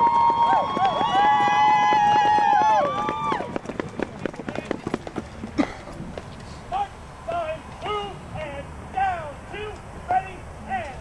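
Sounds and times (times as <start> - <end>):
scattered claps and clicks: 0.0 - 5.3.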